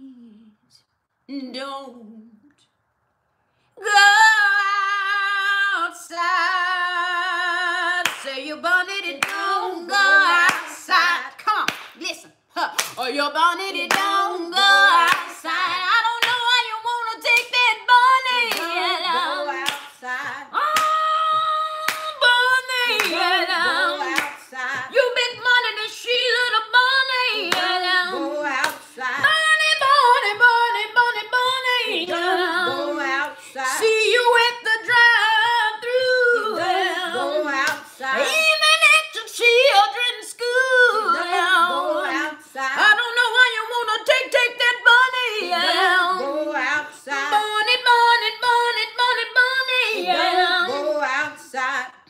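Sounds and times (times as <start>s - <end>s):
woman singing unaccompanied: 3.8s - 52.0s.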